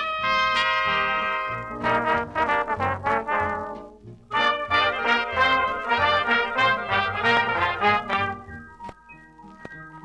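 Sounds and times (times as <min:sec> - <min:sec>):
brass section: 0:00.0 - 0:08.6
swing dance band: 0:00.0 - 0:08.9.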